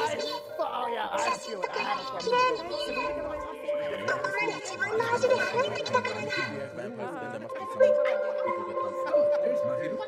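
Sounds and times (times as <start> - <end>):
background music: 0.0 - 10.0
voices talking over one another: 0.0 - 10.0.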